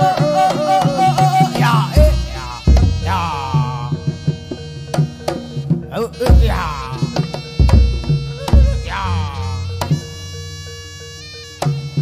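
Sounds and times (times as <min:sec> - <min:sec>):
ringing tones over low drone: 0:00.0 - 0:12.0
sharp percussion stroke: 0:00.0 - 0:12.0.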